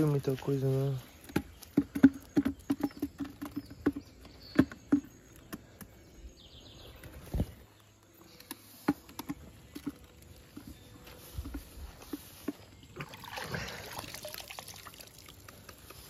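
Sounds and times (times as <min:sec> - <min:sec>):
trap taps and rattles: 0:01.2 - 0:05.9, 0:08.4 - 0:10.7.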